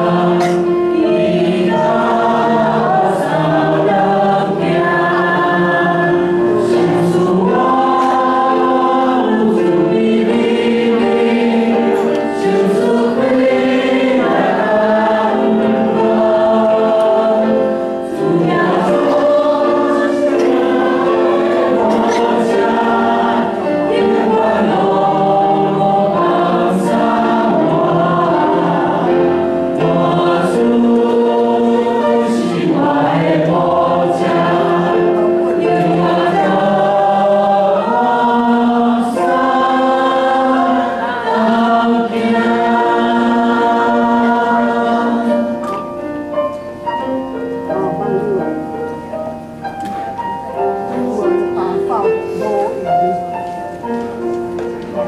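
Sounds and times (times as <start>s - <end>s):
mixed voices singing worship song: 0.0s - 55.0s.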